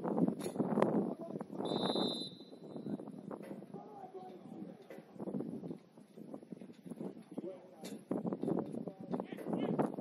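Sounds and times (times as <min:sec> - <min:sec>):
referee's whistle blast: 0:01.6 - 0:02.7.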